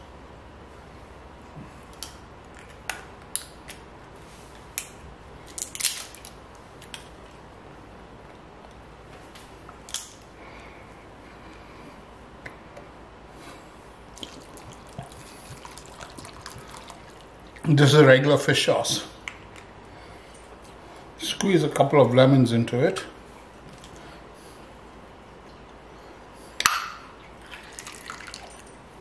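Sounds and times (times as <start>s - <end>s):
low steady hum: 0.0s - 29.0s
liquid dripping: 14.2s - 17.7s, 27.3s - 28.7s.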